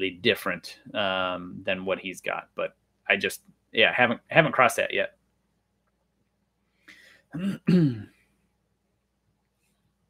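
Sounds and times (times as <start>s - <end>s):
man clearing his throat: 7.4s - 8.1s.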